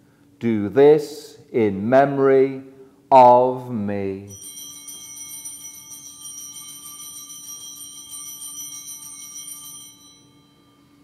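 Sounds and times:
small bells ringing: 0:04.3 - 0:11.0.

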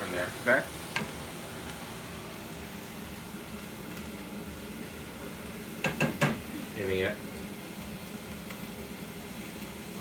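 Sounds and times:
gas stove hiss and hum: 0:00.0 - 0:10.0.

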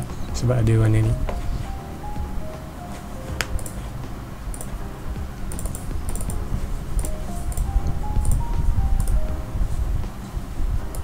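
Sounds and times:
keyboard and mouse clicking: 0:03.3 - 0:03.8, 0:04.4 - 0:04.8, 0:05.5 - 0:06.4, 0:07.0 - 0:09.2.

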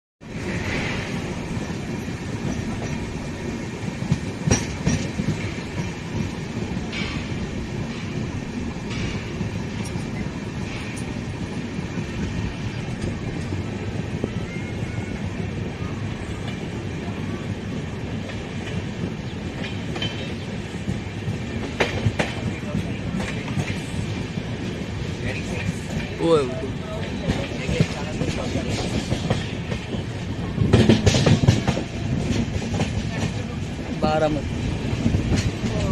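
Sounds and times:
train wheels rumbling on rails: 0:00.2 - 0:35.9
wheels clacking over rail joints: 0:00.4 - 0:14.5, 0:16.3 - 0:35.9.

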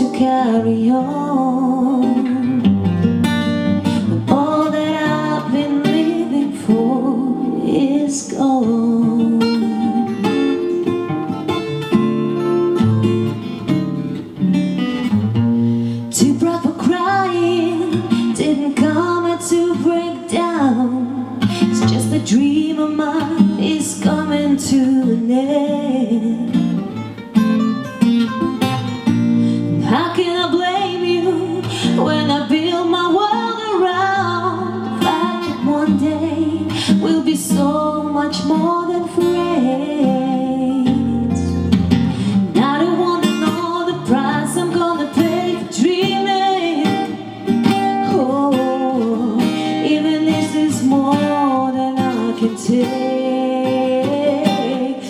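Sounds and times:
woman singing: 0:00.0 - 0:02.8, 0:03.8 - 0:11.1, 0:16.1 - 0:27.0, 0:29.5 - 0:55.0
acoustic guitars: 0:00.0 - 0:55.0.

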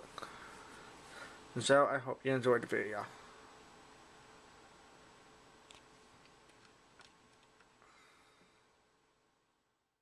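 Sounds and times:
computer mouse clicks: 0:05.7 - 0:07.8.

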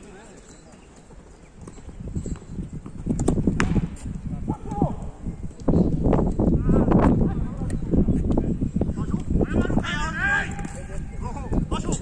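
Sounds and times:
running footsteps: 0:00.0 - 0:12.0
ball being kicked: 0:03.2 - 0:04.2
players shouting: 0:09.0 - 0:12.0.

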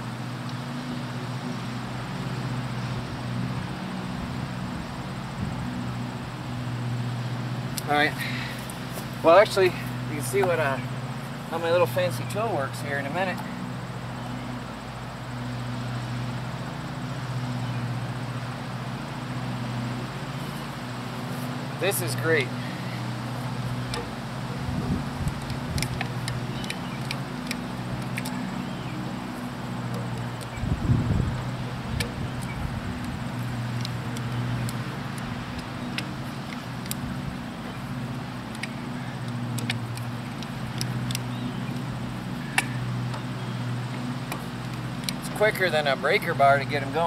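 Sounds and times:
motor hum: 0:00.0 - 0:47.0.

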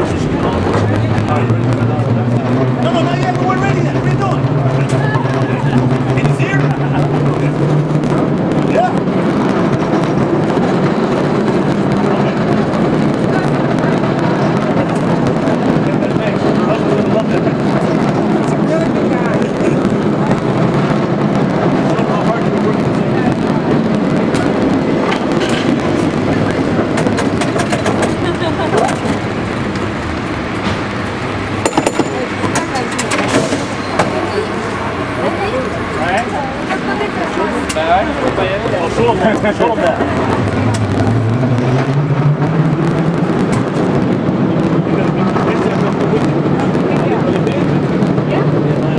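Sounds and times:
cable car rumble and rattle: 0:00.0 - 0:48.9
passengers talking: 0:00.0 - 0:48.9
sharp clacks: 0:23.4 - 0:34.2, 0:39.3 - 0:42.0.

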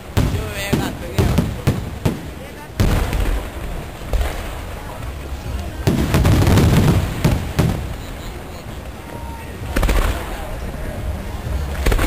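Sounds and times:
fireworks bangs: 0:00.0 - 0:12.0.

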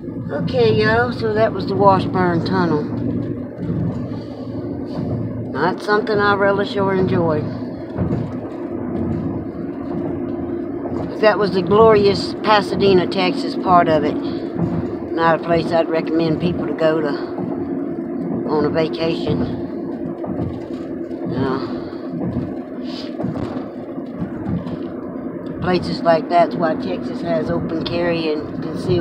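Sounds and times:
car road noise: 0:00.0 - 0:29.0.

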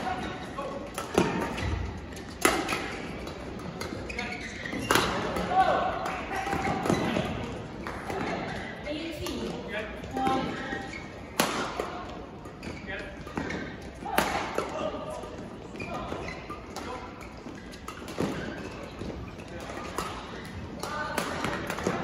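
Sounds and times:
voices in a hall: 0:00.0 - 0:22.0
rackets striking shuttlecock: 0:00.1 - 0:04.1, 0:11.2 - 0:15.4, 0:16.4 - 0:22.0.

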